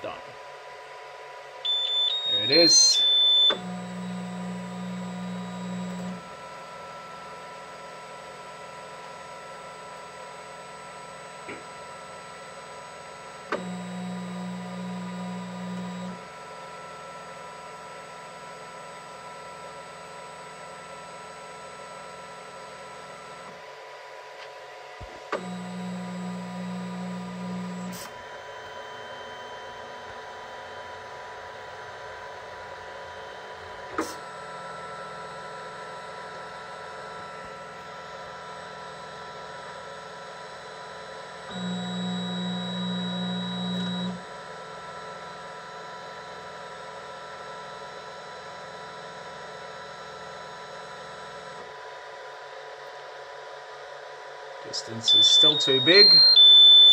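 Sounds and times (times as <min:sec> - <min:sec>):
stepper motors buzzing: 0:01.7 - 0:06.2, 0:41.5 - 0:44.2
printer fans humming: 0:24.4 - 0:39.8.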